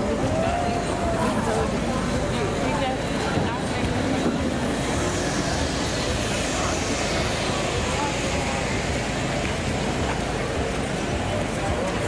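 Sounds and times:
outdoor noise: 0:00.0 - 0:12.0
voices: 0:00.0 - 0:12.0
zipline trolley whirring on cable: 0:00.0 - 0:12.0.

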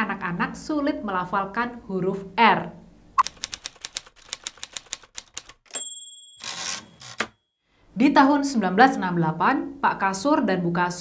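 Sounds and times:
typewriter keystrokes: 0:03.2 - 0:05.7
typewriter margin bell: 0:05.4 - 0:07.4
typewriter carriage return: 0:06.4 - 0:07.4.

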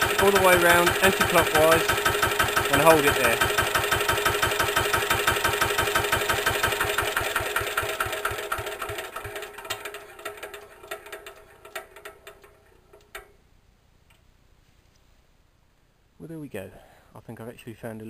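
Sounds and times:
diesel engine running down: 0:00.0 - 0:11.8.

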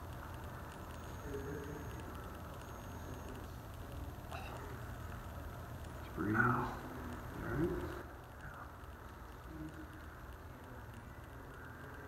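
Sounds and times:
low steady hum: 0:00.0 - 0:12.0
faint voice murmuring: 0:00.4 - 0:05.5.

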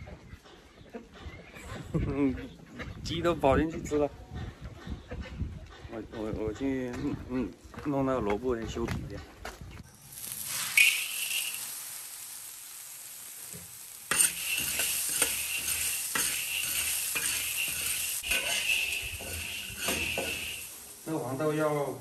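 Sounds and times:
wok sizzling: 0:09.8 - 0:22.0
beans rattling in pan: 0:09.9 - 0:22.0
metal spatula scraping wok: 0:09.9 - 0:22.0.

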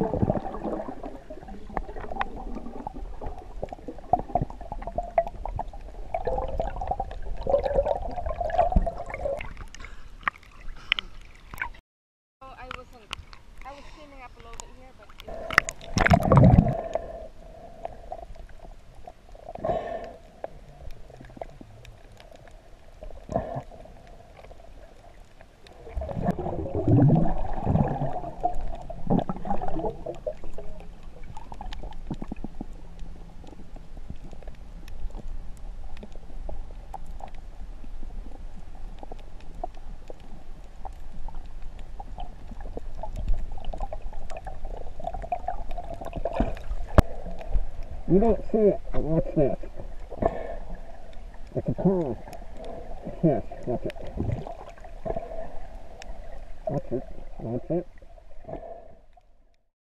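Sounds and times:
underwater gurgling and bubbling: 0:00.0 - 0:11.8, 0:14.5 - 0:59.3.

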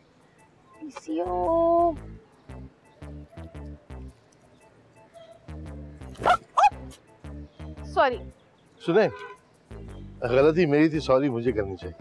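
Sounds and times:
background music: 0:00.0 - 0:12.0
dog barking: 0:06.2 - 0:06.8.

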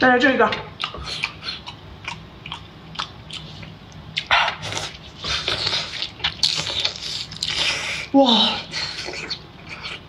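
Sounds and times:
wet eating squelches: 0:00.7 - 0:10.0.

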